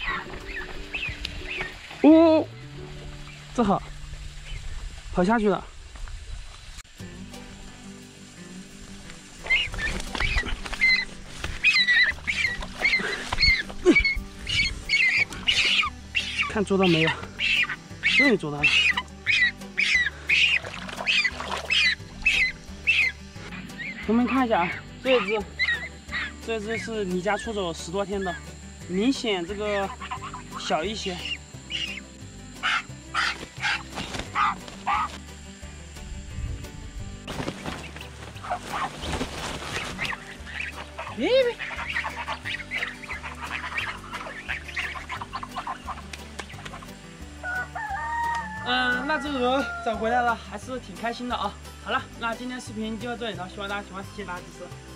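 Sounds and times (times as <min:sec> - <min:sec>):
background music: 0:00.0 - 0:05.6, 0:06.9 - 0:54.9
rustling through undergrowth: 0:00.0 - 0:50.2
wings flapping: 0:09.0 - 0:26.9, 0:32.6 - 0:35.3, 0:37.2 - 0:47.1
goose honking in alarm: 0:10.4 - 0:26.9, 0:29.7 - 0:32.0, 0:32.6 - 0:35.2, 0:39.8 - 0:50.1.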